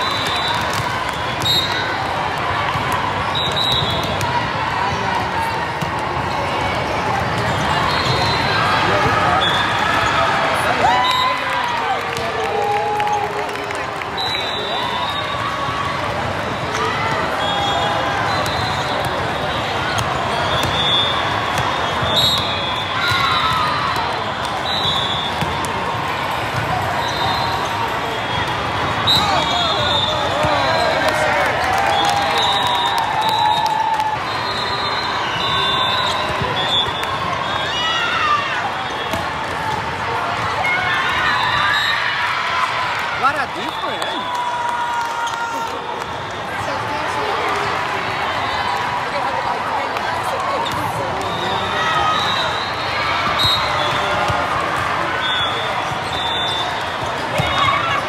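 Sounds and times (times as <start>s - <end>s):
crowd chatter: 0.0s - 58.0s
volleyball hits: 18.4s - 27.2s, 38.9s - 40.6s.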